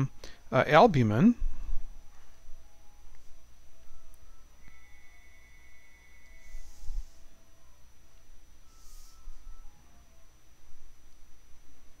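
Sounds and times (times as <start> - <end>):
faint high whine: 0.0 - 12.0
soft breaths into microphone: 1.4 - 2.6, 6.4 - 7.4, 8.6 - 9.7.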